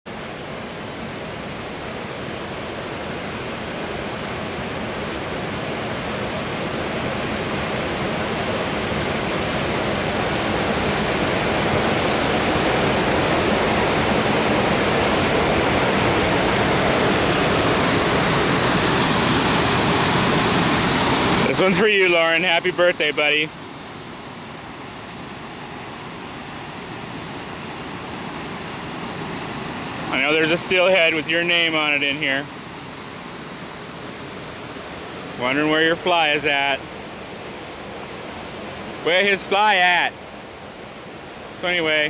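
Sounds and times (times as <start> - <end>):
waterfall roaring: 0.1 - 42.0.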